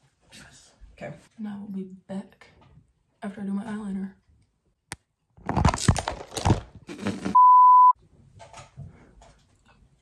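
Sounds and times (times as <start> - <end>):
loud steady beep: 7.4 - 8.0.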